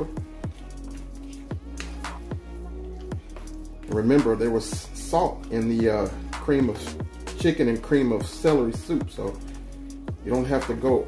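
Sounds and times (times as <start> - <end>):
electronic music: 0.0 - 11.0
deep kick drum beat: 0.1 - 5.0, 5.7 - 11.0.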